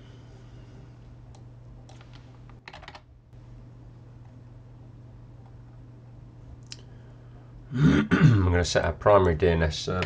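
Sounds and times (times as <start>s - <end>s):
steady low hum: 0.0s - 10.0s
computer keyboard typing: 1.9s - 3.0s.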